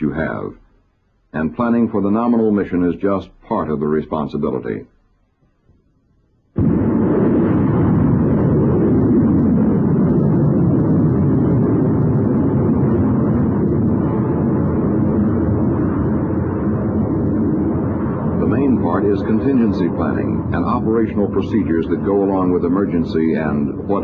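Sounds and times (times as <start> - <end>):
rocket engine roaring: 6.6 - 24.0.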